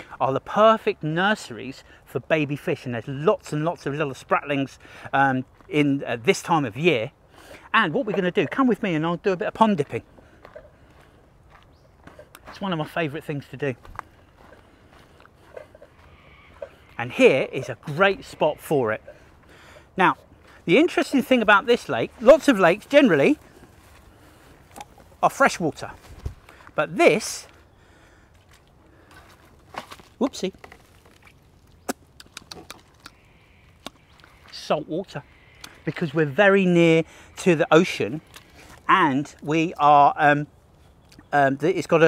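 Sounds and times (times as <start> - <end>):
outdoor background noise: 0.0 - 42.0
footsteps on dirt track: 5.4 - 6.5, 8.2 - 32.0
rustle in grass and brush: 20.4 - 26.8.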